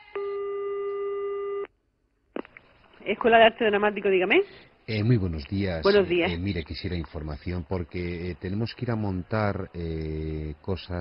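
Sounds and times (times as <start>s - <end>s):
telephone ringback tone: 0.0s - 1.7s.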